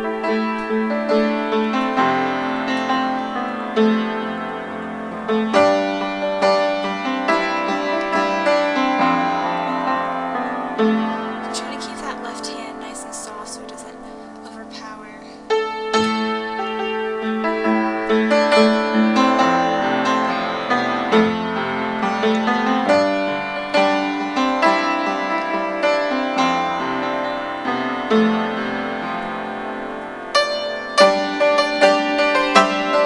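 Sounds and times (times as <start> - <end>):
upright piano playing: 0.0 - 33.0.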